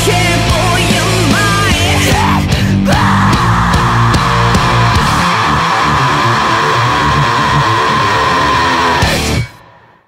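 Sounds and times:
bass playing riff: 0.0s - 9.6s
distorted electric guitars: 0.0s - 10.0s.

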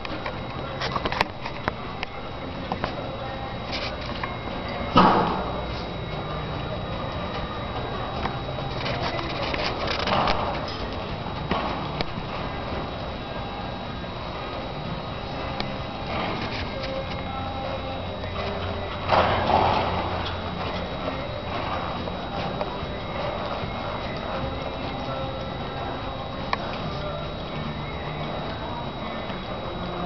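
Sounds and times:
faint background music: 0.0s - 30.0s
hoofbeats on soft ground: 0.0s - 30.0s.

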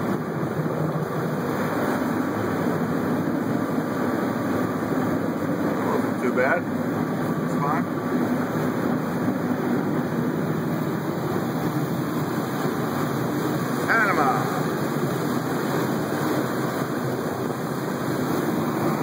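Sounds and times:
water rushing along hulls: 0.0s - 19.0s
wind on microphone: 0.0s - 19.0s.

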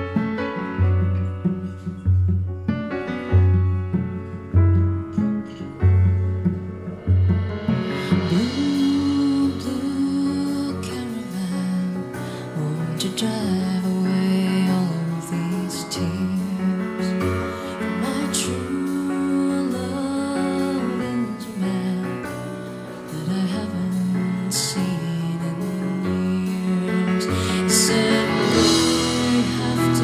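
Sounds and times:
drums: 0.0s - 30.0s
live band instrumental: 0.0s - 30.0s
piano: 0.0s - 30.0s.

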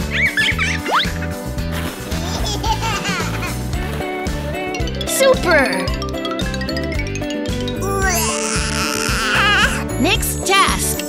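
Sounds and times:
children's background music: 0.0s - 11.0s
high-pitched cry-like sound: 7.8s - 9.8s.

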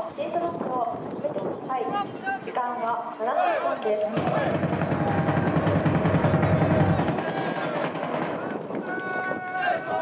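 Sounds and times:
players shouting drawn-out calls: 3.3s - 10.0s.

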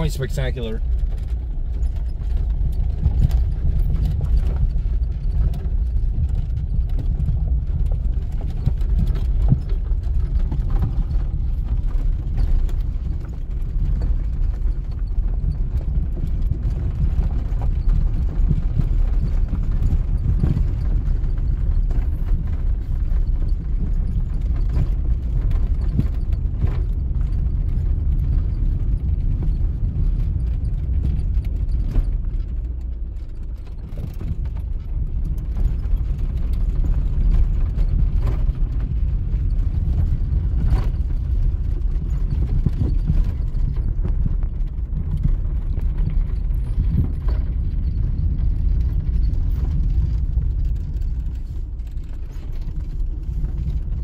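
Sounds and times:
engine and road rumble: 0.0s - 54.0s
suspension knocks and rattles: 0.0s - 54.0s.

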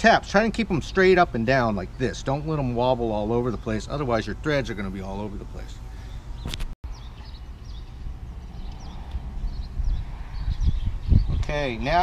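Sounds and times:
steady low rumble: 0.0s - 12.0s
small birds chirping: 0.3s - 12.0s.

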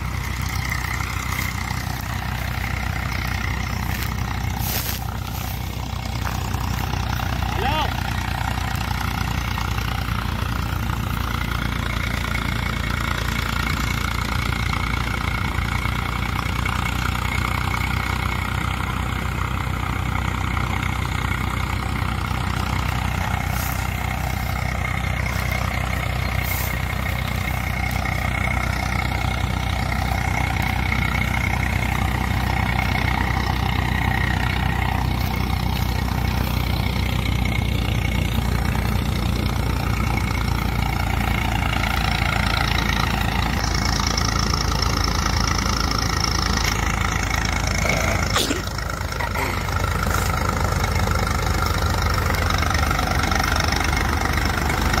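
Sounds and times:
threshing machine hum: 0.0s - 55.0s
tractor diesel engine running: 0.0s - 55.0s.

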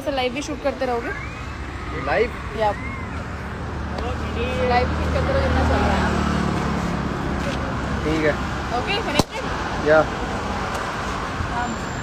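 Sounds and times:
road vehicles rumbling: 0.0s - 12.0s.

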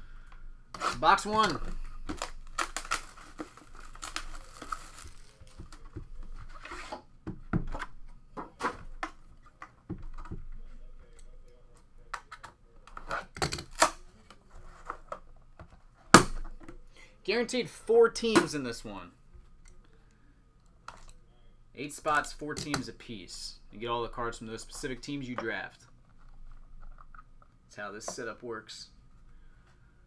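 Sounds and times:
plastic wrap tearing and crinkling: 0.9s - 6.6s.

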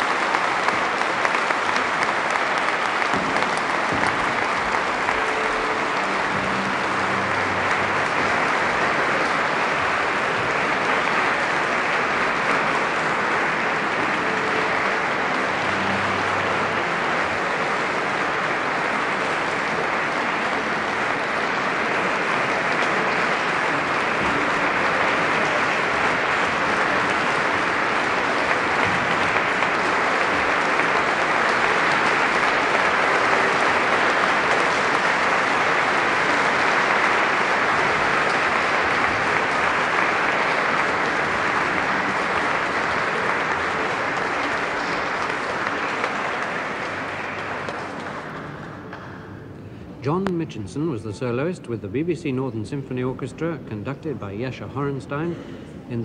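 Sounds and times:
audience applauding: 0.0s - 49.5s.

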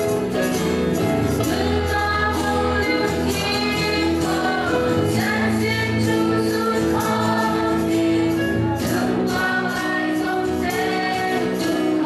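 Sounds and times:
instrumental backing with bass: 0.0s - 12.0s
voices singing together: 1.3s - 12.0s.

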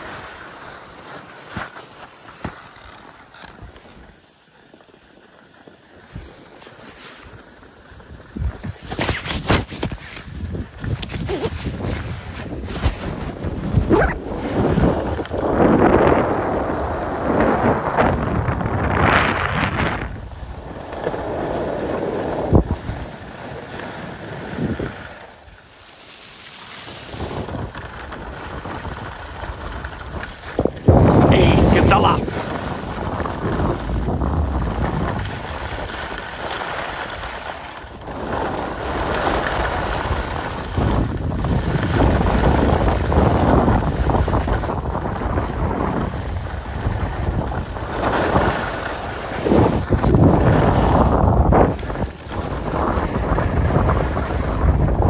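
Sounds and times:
skis hissing on packed snow: 0.0s - 2.5s, 3.8s - 13.2s, 20.5s - 33.9s, 34.5s - 44.8s
wind buffeting microphone: 8.0s - 23.4s, 27.1s - 36.5s, 37.9s - 55.0s.

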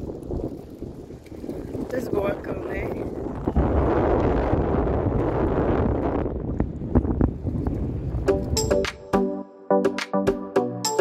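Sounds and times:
wind buffeting microphone: 0.0s - 9.0s
electronic background music: 8.2s - 11.0s.

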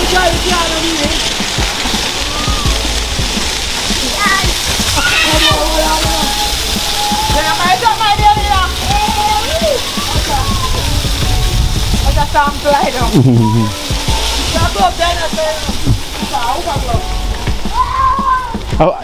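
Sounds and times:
voices calling out: 0.0s - 19.0s
water running and splashing: 0.0s - 19.0s.

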